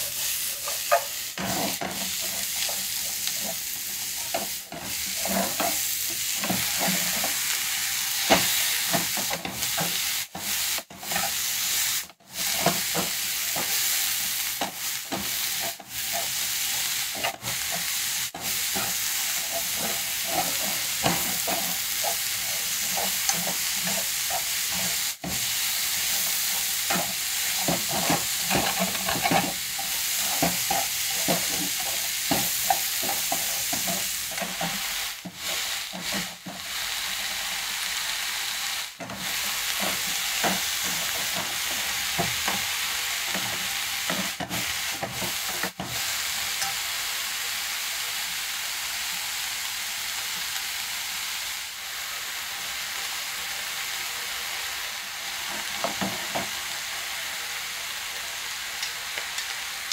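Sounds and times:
chopsticks scraping a pan: 0:00.0 - 0:37.5, 0:39.0 - 0:46.8
vegetables sizzling in a frying pan: 0:00.0 - 0:59.9.

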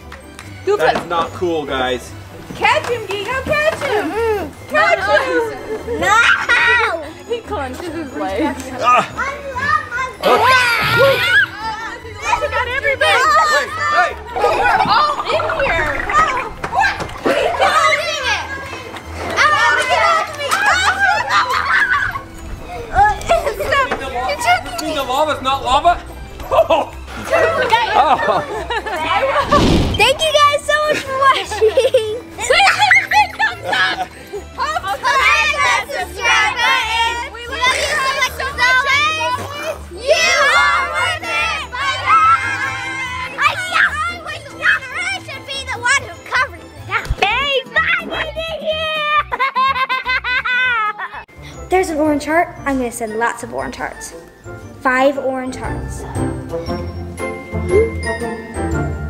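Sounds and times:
children laughing: 0:03.6 - 0:07.6, 0:08.4 - 0:25.0, 0:26.4 - 0:51.6
children shouting and squealing: 0:04.0 - 0:07.2, 0:08.8 - 0:25.0, 0:26.8 - 0:51.3.

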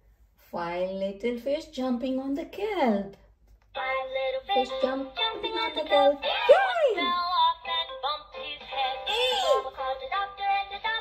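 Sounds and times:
children's song from small speaker: 0:03.7 - 0:11.0.

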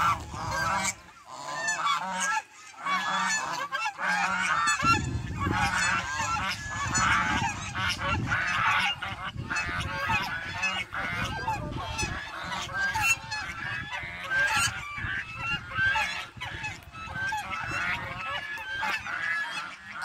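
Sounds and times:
geese honking: 0:00.0 - 0:20.0.

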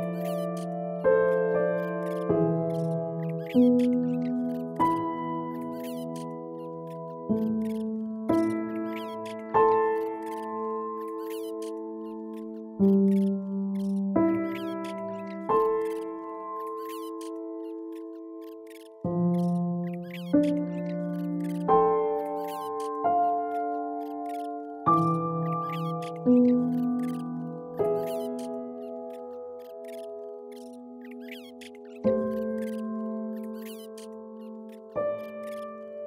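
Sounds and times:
slow calm piano music: 0:00.0 - 0:36.0.

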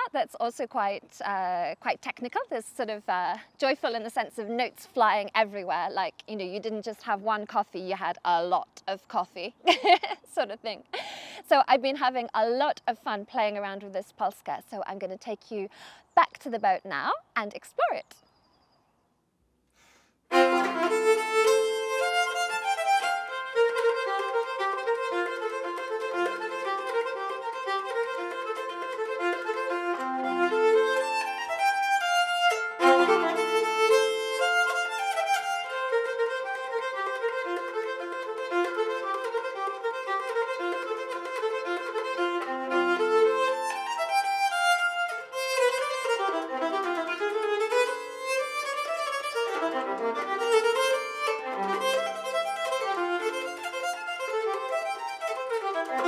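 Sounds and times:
bowed keyed fiddle melody: 0:00.0 - 0:14.4, 0:20.2 - 0:56.0.

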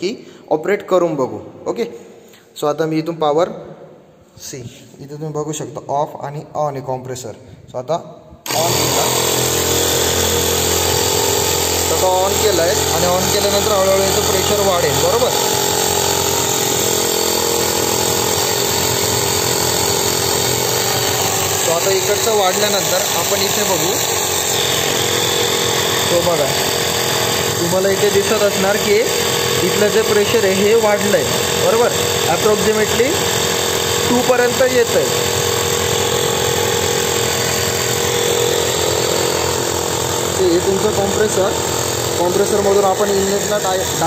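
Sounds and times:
air compressor humming: 0:08.4 - 0:44.0.

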